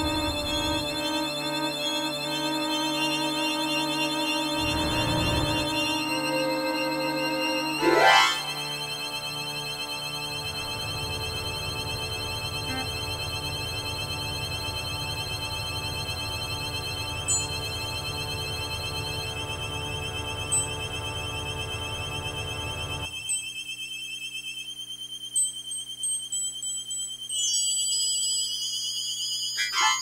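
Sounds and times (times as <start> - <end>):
low pulsing throb: 0.0 - 7.7
electronic drone chord: 0.0 - 23.1.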